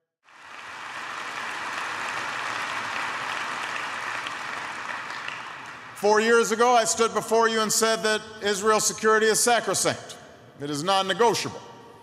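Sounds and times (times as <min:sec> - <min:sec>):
large audience applauding: 0:00.2 - 0:06.0.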